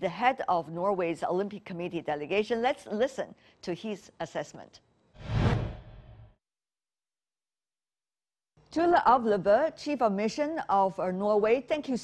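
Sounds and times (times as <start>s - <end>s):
whoosh sound effect: 5.2s - 6.3s.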